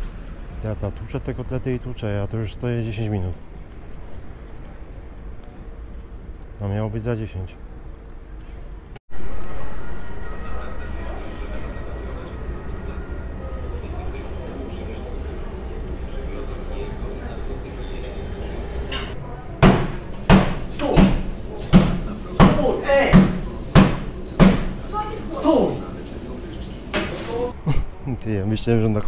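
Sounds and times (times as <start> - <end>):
meat mallet pounding: 19.6 - 24.8.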